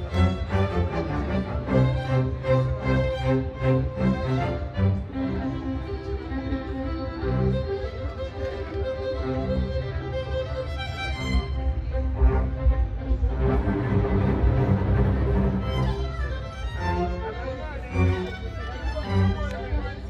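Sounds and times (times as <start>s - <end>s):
string ensemble playing: 0.0s - 20.0s.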